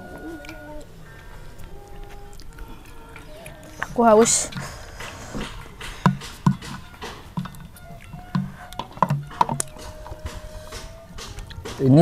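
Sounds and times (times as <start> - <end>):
faint background music: 0.0 - 12.0
chewing and mouth sounds: 0.1 - 6.4, 7.4 - 8.9
small mouth clicks: 1.6 - 5.7.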